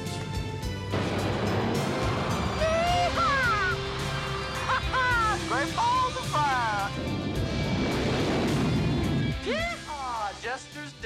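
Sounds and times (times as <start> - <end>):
orchestral film score: 0.0 - 11.0
men laughing: 2.6 - 6.8
man laughing: 4.6 - 6.8.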